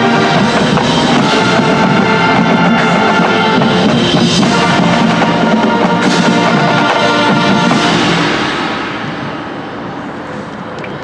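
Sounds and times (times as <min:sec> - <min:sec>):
marching band playing: 0:00.0 - 0:10.3
crowd noise: 0:00.0 - 0:11.0.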